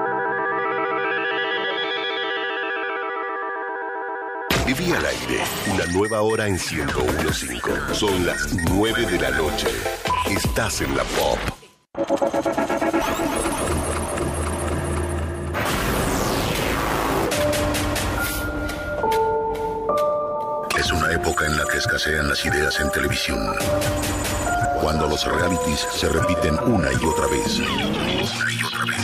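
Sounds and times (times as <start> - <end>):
warbling electronic keyboard chord: 0.0 - 4.5.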